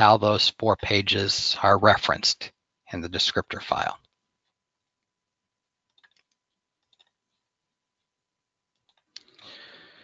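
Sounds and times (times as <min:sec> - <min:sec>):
computer mouse clicking: 0:05.9 - 0:07.4, 0:08.7 - 0:09.4.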